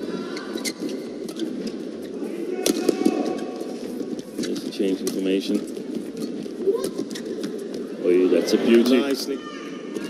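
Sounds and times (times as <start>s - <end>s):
arena crowd noise: 0.0s - 0.8s, 2.1s - 3.8s, 7.7s - 10.0s.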